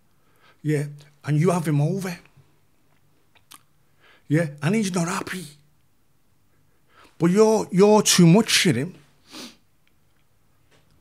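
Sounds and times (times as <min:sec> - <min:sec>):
man sniffing: 0:09.2 - 0:09.6.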